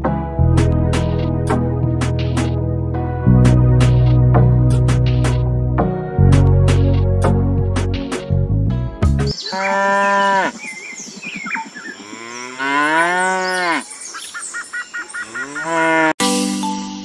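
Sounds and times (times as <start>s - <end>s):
cow mooing: 9.4s - 10.6s, 12.0s - 13.9s, 15.2s - 16.2s.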